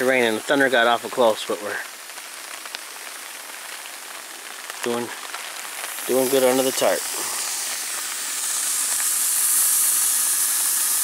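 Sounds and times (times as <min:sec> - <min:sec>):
burger patties sizzling in skillet: 0:00.0 - 0:11.0.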